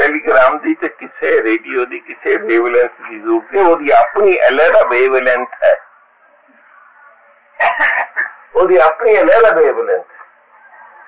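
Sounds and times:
man talking: 0:00.0 - 0:05.8, 0:08.5 - 0:10.1.

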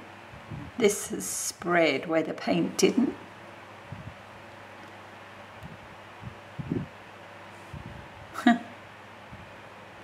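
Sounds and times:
room fan hiss: 0:00.0 - 0:10.0.

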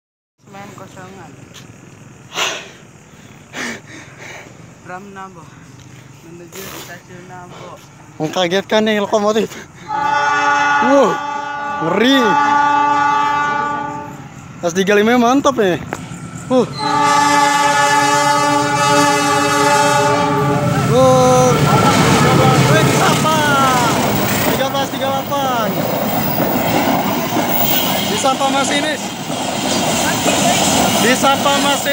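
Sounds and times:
freight train rumbling past: 0:04.4 - 0:31.9.

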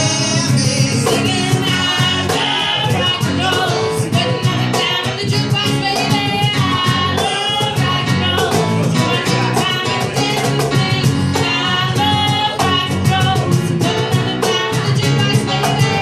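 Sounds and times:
live band with singers: 0:00.0 - 0:16.0.

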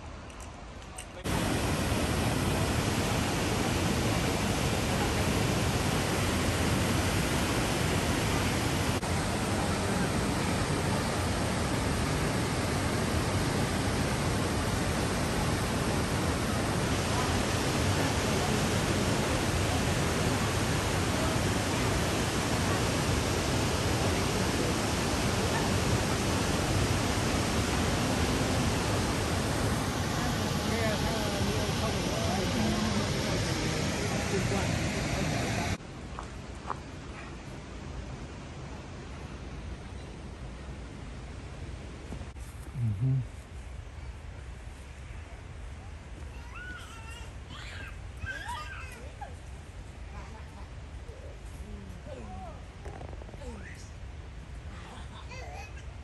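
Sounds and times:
water rushing over boulders: 0:01.2 - 0:37.1.

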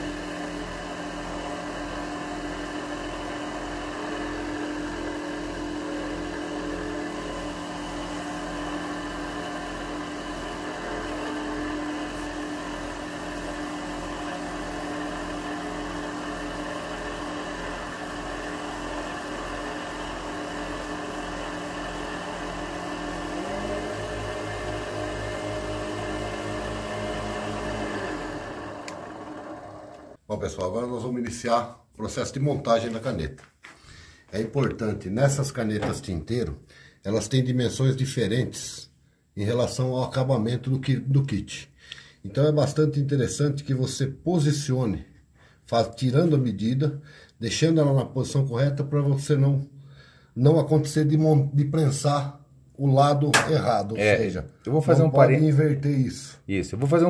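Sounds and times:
wood lathe humming: 0:00.0 - 0:30.2.

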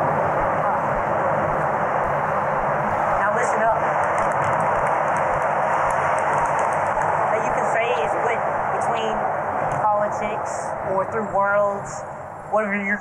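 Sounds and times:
truck engine and tyre noise: 0:00.0 - 0:11.4.

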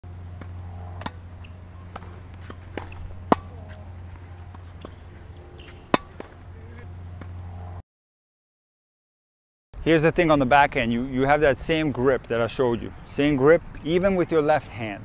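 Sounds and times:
steady low hum: 0:00.0 - 0:07.8
tennis balls struck and bouncing: 0:00.1 - 0:07.8.

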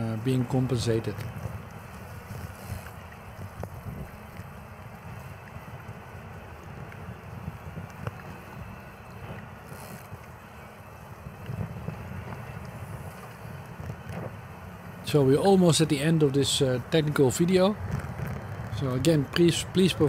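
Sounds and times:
wind buffeting microphone: 0:00.0 - 0:20.0
small clicks: 0:01.1 - 0:14.4.

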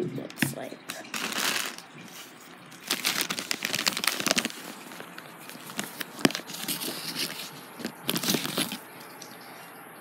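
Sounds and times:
cardstock rustle: 0:01.1 - 0:08.8
small clicks and crackles: 0:02.8 - 0:09.4.

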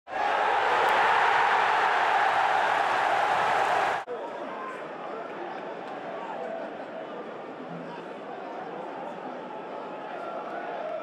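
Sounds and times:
stadium crowd noise: 0:00.1 - 0:11.0.

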